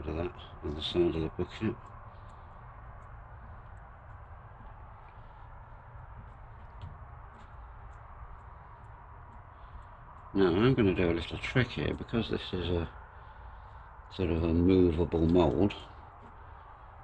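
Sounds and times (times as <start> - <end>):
low background rumble: 0.0 - 17.0
faint ticks: 1.7 - 10.4.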